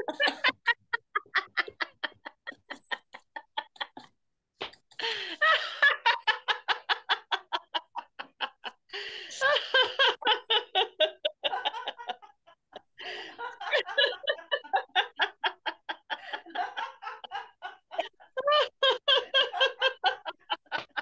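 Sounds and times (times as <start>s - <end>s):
rhythmic laughter: 0.0s - 4.1s, 9.4s - 21.0s.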